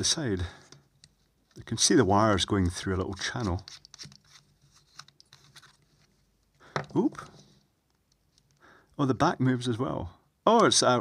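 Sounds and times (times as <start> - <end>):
metal head torch clicks and scratches: 2.5 - 6.1
lamp head unscrewing on threads: 2.6 - 6.6.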